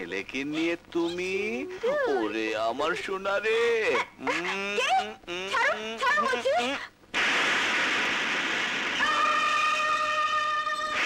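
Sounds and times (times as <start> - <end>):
steady rush of noise: 7.1 - 10.3.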